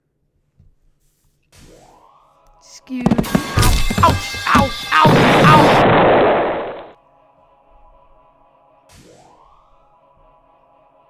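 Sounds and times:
faint background music: 0:00.1 - 0:05.0
explosion: 0:05.0 - 0:06.9.

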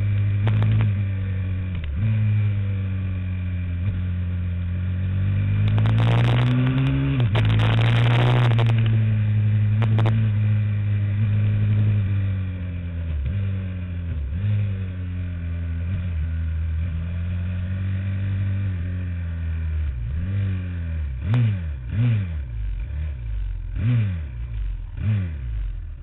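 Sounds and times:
small motorcycle engine: 0:00.0 - 0:26.0.

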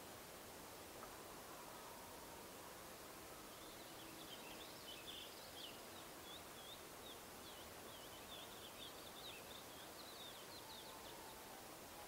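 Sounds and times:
steady outdoor hiss: 0:00.0 - 0:12.0
small birds chirping: 0:03.5 - 0:12.0.

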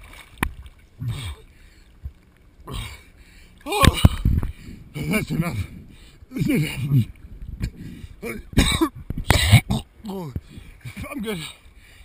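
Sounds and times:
man coughing hard: 0:08.6 - 0:09.9.

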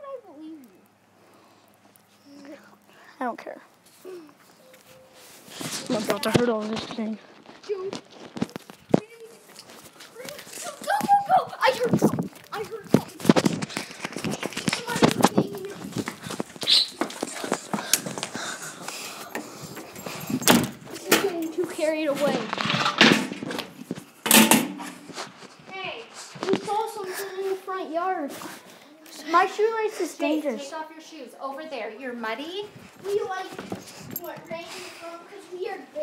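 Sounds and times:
rustling: 0:03.8 - 0:27.6
muffled children's voices: 0:05.5 - 0:18.8, 0:20.9 - 0:23.8, 0:25.6 - 0:31.8, 0:32.7 - 0:36.0.

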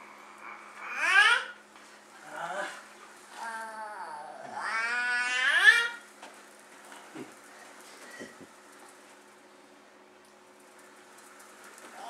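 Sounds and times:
child whining: 0:00.4 - 0:01.6, 0:03.4 - 0:06.0.

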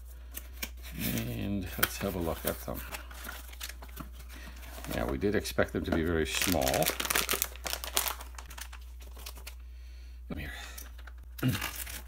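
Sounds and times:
plastic bag crinkling: 0:05.9 - 0:09.6.

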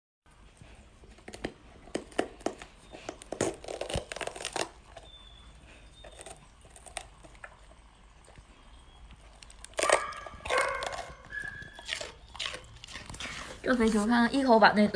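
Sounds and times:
dog crunching a pepper: 0:00.5 - 0:14.6.

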